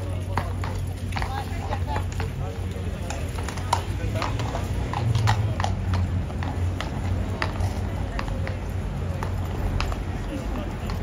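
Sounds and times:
horse hooves on stone: 0:00.0 - 0:11.0.

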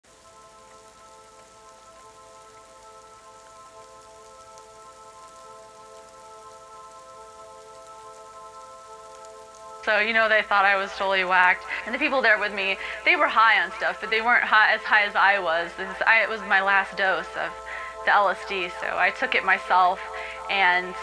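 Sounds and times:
soft hiss: 0:00.0 - 0:21.0
spoken voice sample: 0:09.8 - 0:21.0.

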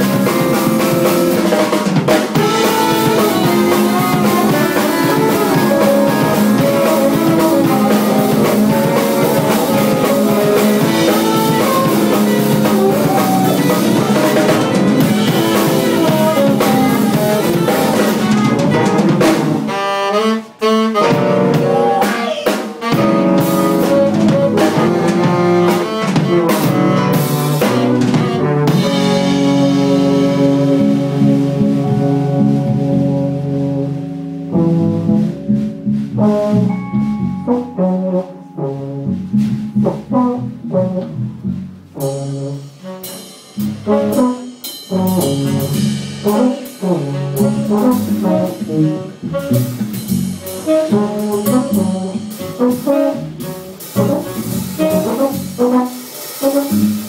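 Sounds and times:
drum rimshots and snare: 0:00.0 - 0:19.8, 0:21.0 - 0:32.2, 0:41.9 - 0:57.0
live jazz band playing: 0:00.0 - 0:57.0.

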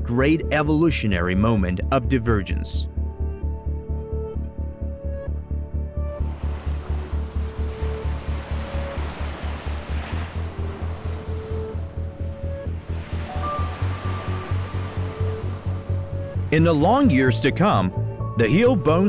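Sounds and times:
background music with low pulse: 0:00.0 - 0:19.0
small waves washing onto beach: 0:06.2 - 0:11.9, 0:12.8 - 0:16.0.

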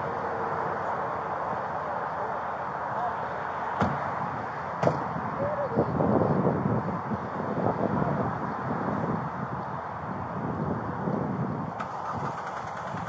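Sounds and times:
sharp knock: 0:04.8 - 0:05.0
car engine rumbling: 0:11.6 - 0:13.0.

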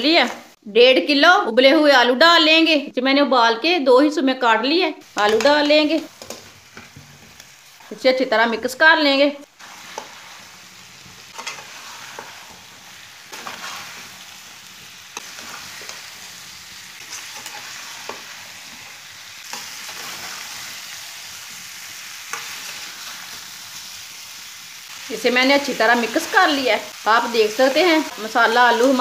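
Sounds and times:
food sizzling in pan: 0:00.0 - 0:00.6, 0:05.0 - 0:29.0.

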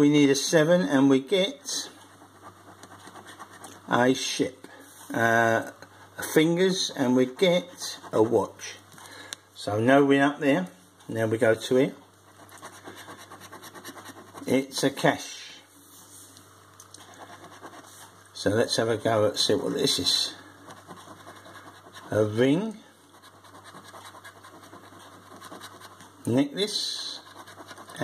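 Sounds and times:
coin scratching scratchcard: 0:02.0 - 0:03.8, 0:12.3 - 0:14.7, 0:17.0 - 0:18.0, 0:20.1 - 0:22.4, 0:23.1 - 0:26.0, 0:26.8 - 0:28.0
coin scraping scratchcard: 0:27.0 - 0:28.0.

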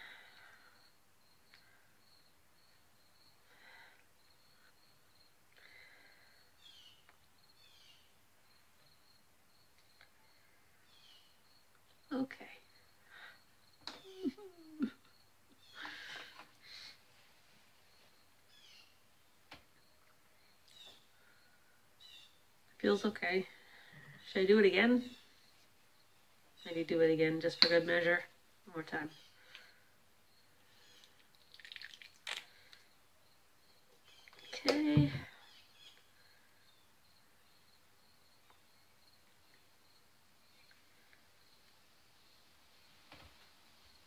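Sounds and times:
woman humming: 0:13.9 - 0:15.1
liquid trickling into plastic cup: 0:31.4 - 0:32.5.

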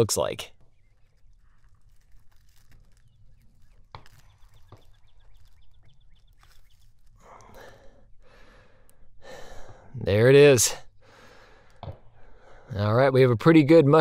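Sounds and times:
small clicks: 0:00.6 - 0:07.8
fingers scratching plastic sandbag: 0:00.8 - 0:07.2.

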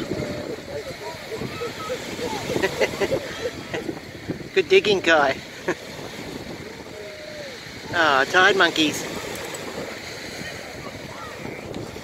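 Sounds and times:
people chattering: 0:00.0 - 0:05.4, 0:06.5 - 0:12.0
wind and surf hiss: 0:00.0 - 0:12.0.

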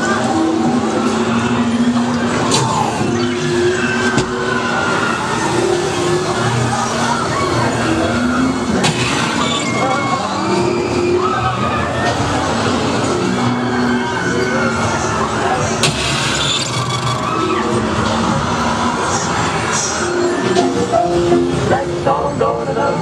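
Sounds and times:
indistinct voices: 0:00.0 - 0:23.0.

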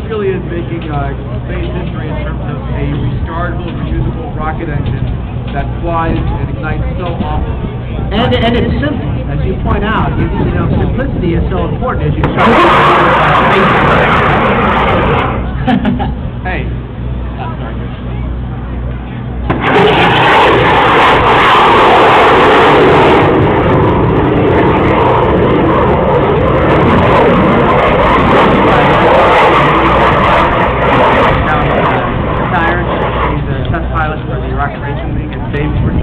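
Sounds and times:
rocket engine roaring overhead: 0:00.0 - 0:36.0.

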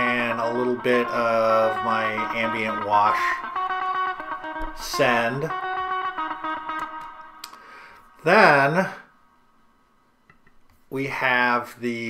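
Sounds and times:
guitar chord with heavy reverb: 0:00.0 - 0:07.9.

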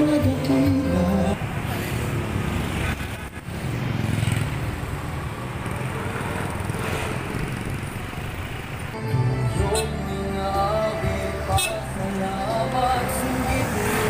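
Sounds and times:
passing cars engines and tyres: 0:00.0 - 0:14.0.

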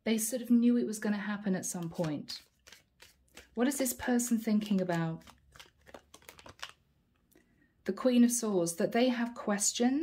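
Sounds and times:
deck of cards being handled: 0:01.7 - 0:06.8.

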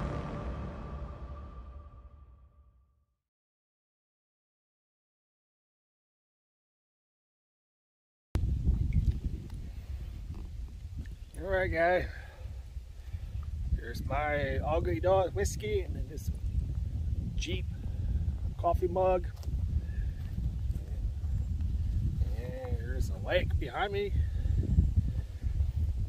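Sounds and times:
wind buffeting microphone: 0:08.4 - 0:26.0.

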